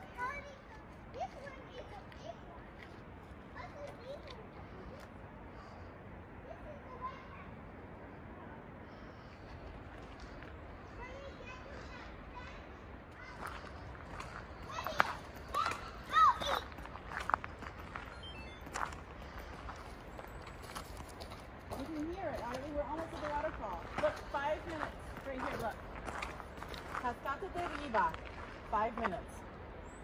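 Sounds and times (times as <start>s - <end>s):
footsteps on gravel: 13.1s - 29.3s.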